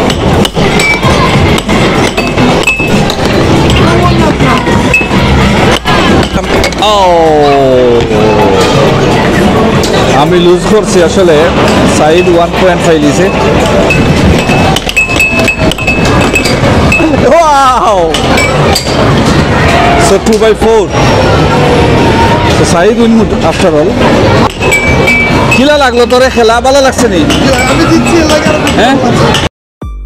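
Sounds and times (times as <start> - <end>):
air hockey puck clacking: 0.0 - 6.9, 13.4 - 17.2, 18.0 - 19.4, 24.4 - 26.4
arcade noise: 0.0 - 30.0.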